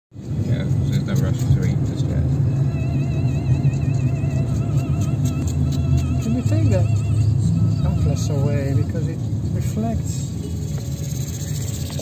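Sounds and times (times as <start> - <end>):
vehicle rumble from inside cabin: 0.2 - 12.0.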